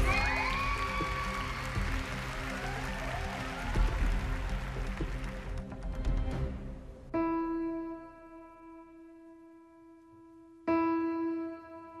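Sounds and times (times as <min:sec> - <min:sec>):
audience cheering: 0:00.0 - 0:05.6
audience applauding: 0:00.0 - 0:05.8
background music: 0:00.0 - 0:12.0.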